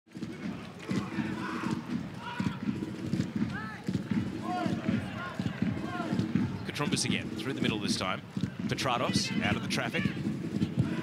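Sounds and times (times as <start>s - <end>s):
crowd murmur: 0.1s - 11.0s
players shouting: 0.4s - 7.8s, 9.0s - 11.0s.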